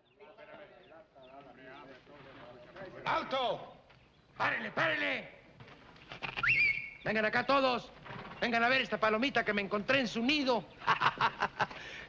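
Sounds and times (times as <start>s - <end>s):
men's voices overlapping: 0.0s - 5.6s, 7.0s - 11.2s.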